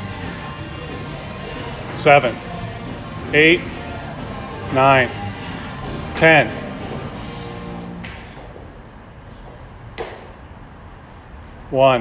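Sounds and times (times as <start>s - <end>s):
low gym room noise: 0.0s - 12.0s.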